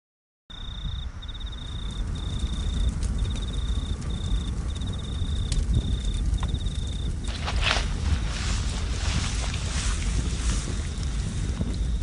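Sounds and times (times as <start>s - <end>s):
cricket chirping: 0.5s - 12.0s
steady low rumble: 0.5s - 12.0s.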